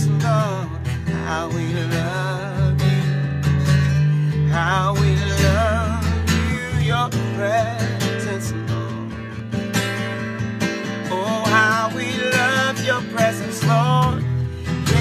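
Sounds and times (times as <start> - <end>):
man singing: 0.0 - 9.5, 11.0 - 15.0
acoustic guitar strumming: 0.0 - 15.0.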